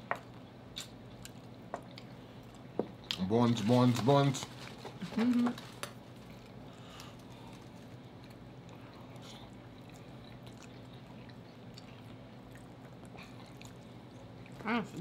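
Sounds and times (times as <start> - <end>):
steady low hum: 0.0 - 15.0
close-up chewing: 6.2 - 14.6.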